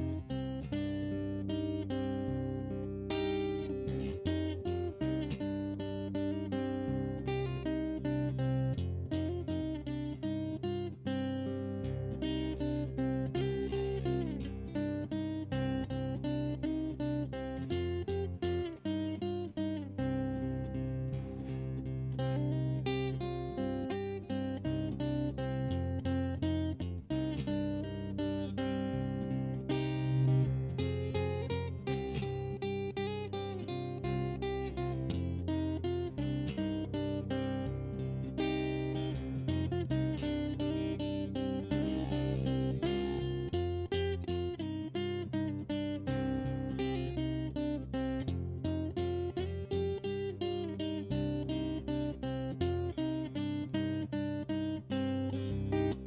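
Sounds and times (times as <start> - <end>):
fingerpicked acoustic guitar: 0.0 - 56.0.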